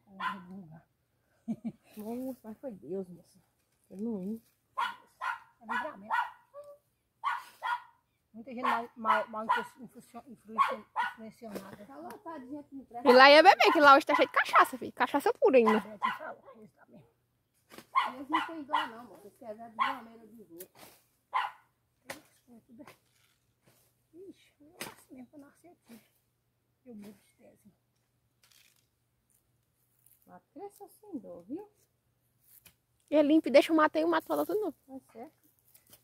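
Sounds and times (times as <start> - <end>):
dog barking: 0.2 - 0.5, 4.8 - 8.0, 8.6 - 9.8, 10.6 - 11.2, 13.7 - 14.6, 15.6 - 16.4, 17.9 - 19.1, 19.8 - 20.1, 21.3 - 21.7.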